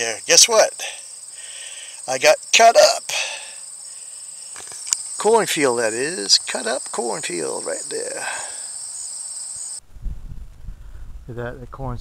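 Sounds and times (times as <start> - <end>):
insects trilling: 0.0 - 9.8.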